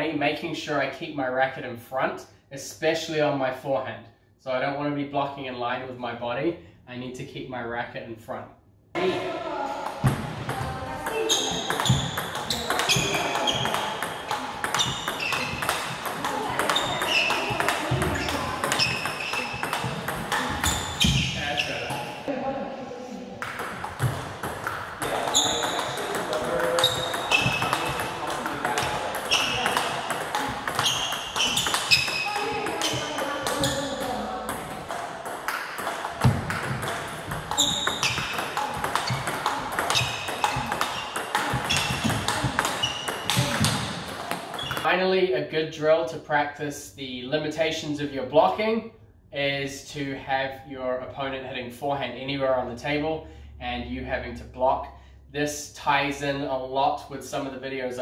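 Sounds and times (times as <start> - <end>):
table tennis ball hits: 9.8 - 22.2, 23.4 - 44.9.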